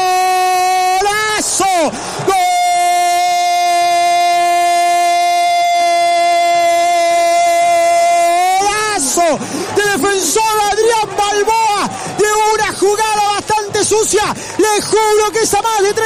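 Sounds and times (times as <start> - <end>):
commentator shouting goal: 0.0 - 16.0
man speaking excitedly: 0.0 - 16.0.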